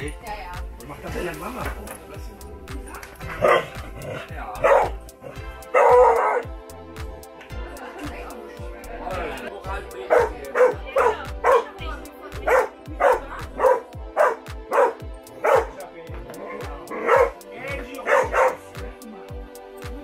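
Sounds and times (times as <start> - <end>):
music with steady beat: 0.0 - 20.0
dog barking: 3.3 - 6.5, 10.1 - 11.8, 12.4 - 15.8, 16.9 - 18.8.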